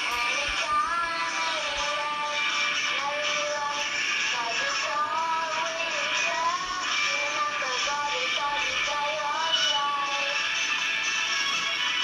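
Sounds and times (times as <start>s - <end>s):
person singing slow melody: 0.0s - 10.4s.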